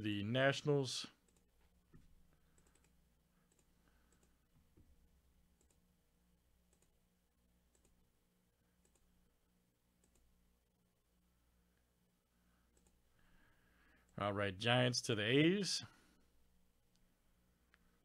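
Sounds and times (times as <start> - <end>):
computer mouse clicks: 2.5 - 4.4, 5.6 - 5.8, 6.7 - 7.0, 7.7 - 8.0, 8.8 - 9.1, 10.0 - 10.3, 12.7 - 13.0.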